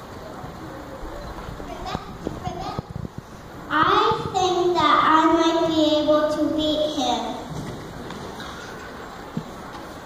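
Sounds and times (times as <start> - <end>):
faint children's voices: 0.0 - 7.6.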